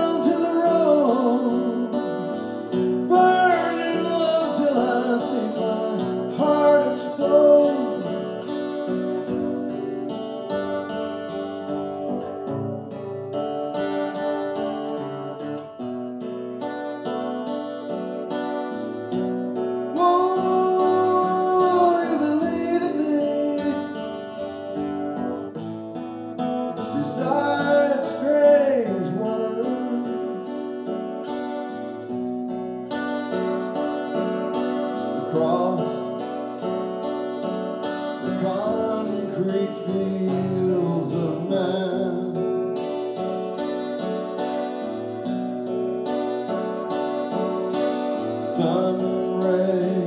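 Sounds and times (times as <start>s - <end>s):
acoustic guitar picking: 0.0s - 50.0s.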